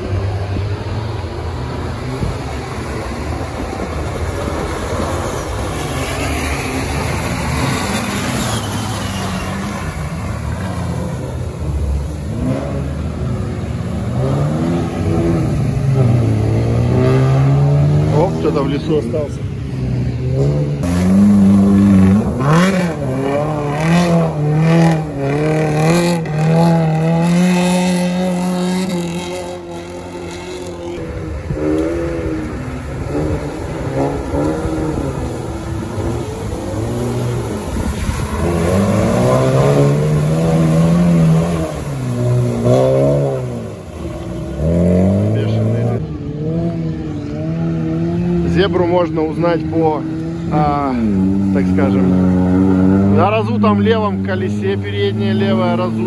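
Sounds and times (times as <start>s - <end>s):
car engines revving: 0.0s - 56.0s.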